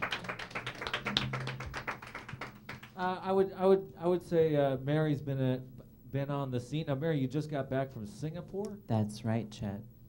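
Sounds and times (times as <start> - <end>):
audience clapping: 0.0 - 3.1
low steady hum: 0.0 - 10.0.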